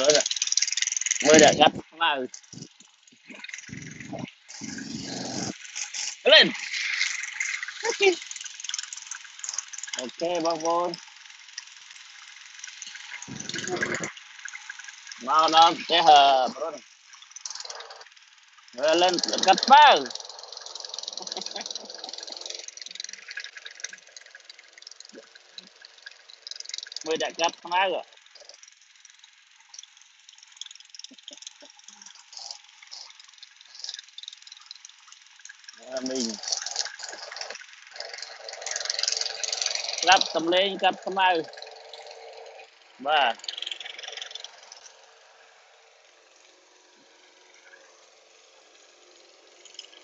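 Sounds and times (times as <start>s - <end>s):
man talking: 0.0s - 0.2s, 1.2s - 2.3s, 6.3s - 6.6s, 7.8s - 8.2s, 10.0s - 11.0s, 15.2s - 16.8s, 18.8s - 20.1s, 27.1s - 28.0s, 35.8s - 36.4s, 40.0s - 41.5s, 43.0s - 43.4s
distant lawn mower rattling: 0.0s - 50.0s.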